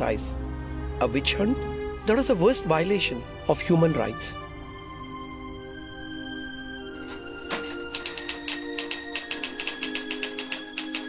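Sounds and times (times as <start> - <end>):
soft background music: 0.0 - 11.0
typewriter key clicks: 7.5 - 11.0.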